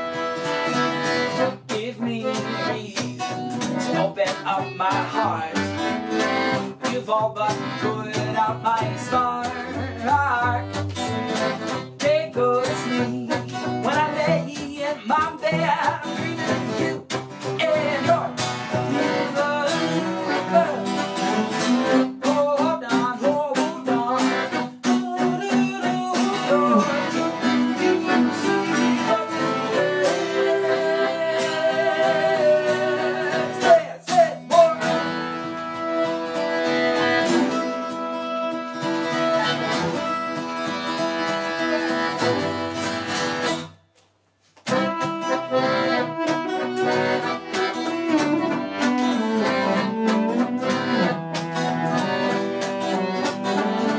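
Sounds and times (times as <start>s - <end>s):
piano accordion: 0.0s - 33.8s, 34.5s - 43.6s, 44.6s - 53.9s
strummed acoustic guitar: 0.0s - 43.8s, 44.4s - 53.9s
man singing: 1.3s - 11.1s, 11.9s - 35.8s, 37.2s - 40.3s.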